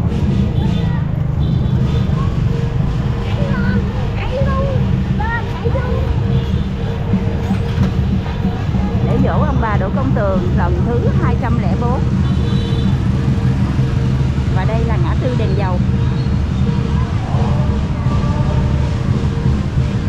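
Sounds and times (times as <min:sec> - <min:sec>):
low rumble of street traffic: 0:00.0 - 0:20.0
motorbikes passing: 0:00.0 - 0:20.0
people's voices: 0:00.0 - 0:20.0.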